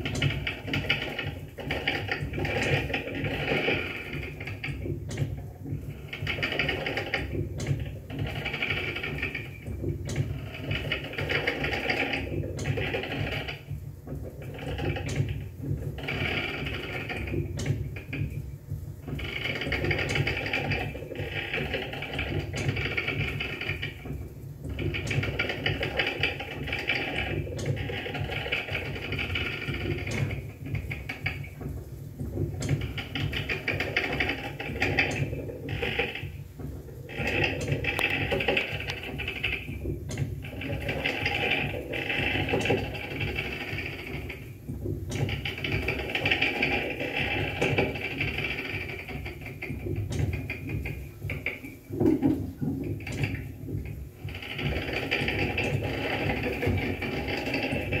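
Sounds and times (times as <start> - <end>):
experimental noise music: 0.0 - 58.0.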